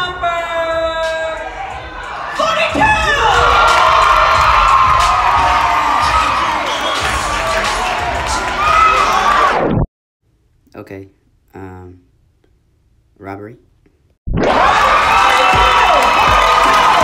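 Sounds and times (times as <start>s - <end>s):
audience cheering and shouting: 0.0s - 9.7s, 14.4s - 17.0s.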